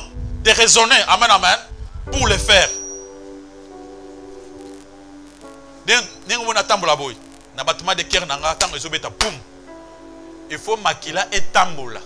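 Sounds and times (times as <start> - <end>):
sustained keyboard chords: 0.0 - 12.0.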